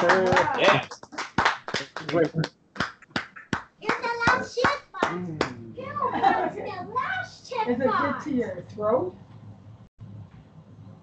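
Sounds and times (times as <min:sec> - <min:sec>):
people talking: 0:00.0 - 0:00.9, 0:01.8 - 0:02.5, 0:03.8 - 0:09.2
child's voice: 0:03.8 - 0:05.2, 0:05.8 - 0:08.3.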